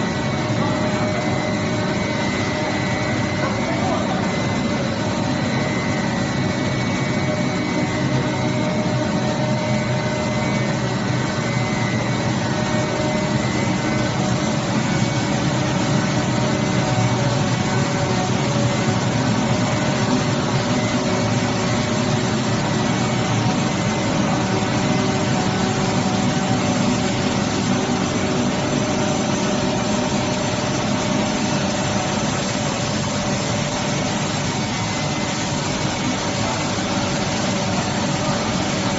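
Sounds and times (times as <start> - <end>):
machinery hum and rush: 0.0 - 38.9
steady machine tones: 0.0 - 38.9.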